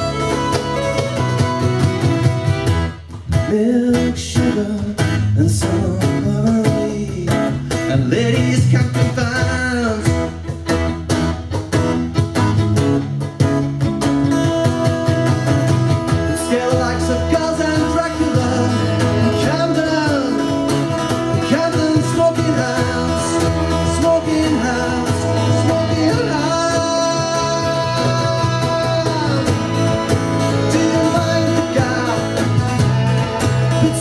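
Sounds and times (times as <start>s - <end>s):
folk band playing: 0.0s - 34.0s
man singing: 3.3s - 10.6s, 16.1s - 34.0s.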